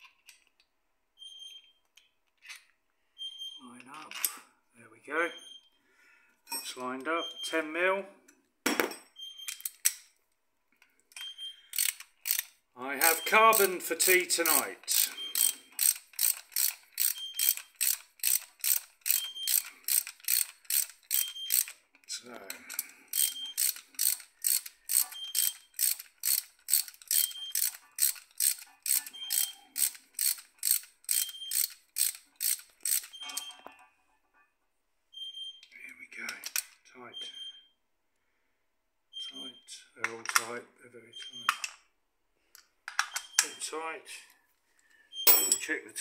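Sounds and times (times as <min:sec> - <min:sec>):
socket ratchet clicking: 0:11.7 - 0:21.8, 0:22.7 - 0:33.2.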